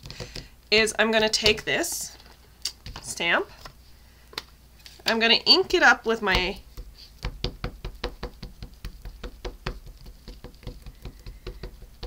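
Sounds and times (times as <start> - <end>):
ink pad tapping on stamp: 7.2 - 12.0.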